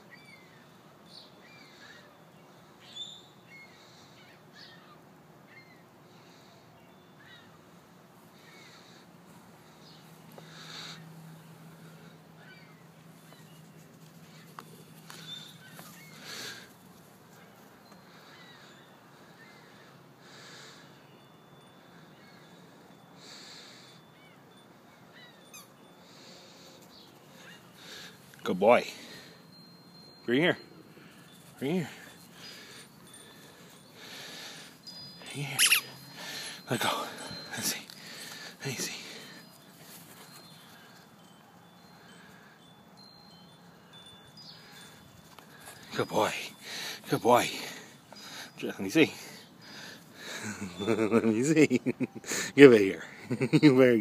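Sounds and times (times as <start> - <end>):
faint bird chirps: 0.0 - 51.4
outdoor background hiss: 0.0 - 54.0
soft breaths: 5.9 - 50.8
thin high ringing tones: 20.8 - 54.0.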